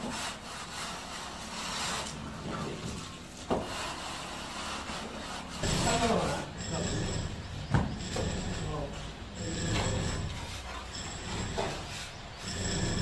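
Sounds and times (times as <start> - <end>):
straight-edge scraping plaster: 0.0 - 13.0.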